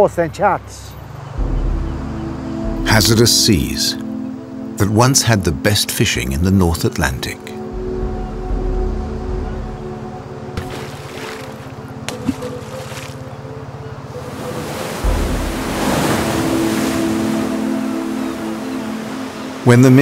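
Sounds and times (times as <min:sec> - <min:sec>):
surf breaking over rocks: 0:14.5 - 0:18.0.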